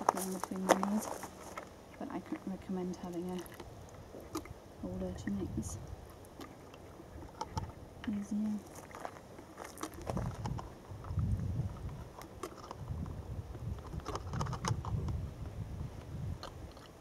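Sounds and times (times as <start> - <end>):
low uneven rumble: 0.0 - 17.0.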